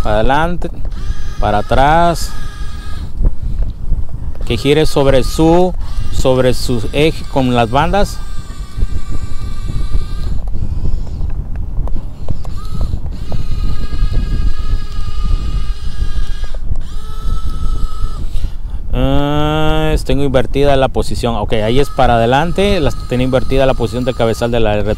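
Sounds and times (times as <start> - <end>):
small electric gear motors whining: 0.0 - 19.4, 20.6 - 24.9
wind rumble on microphone: 0.0 - 24.9.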